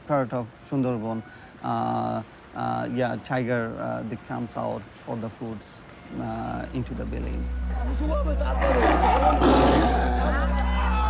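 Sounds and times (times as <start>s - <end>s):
crowd shouting: 8.5s - 11.0s
tiger roaring: 8.6s - 10.2s.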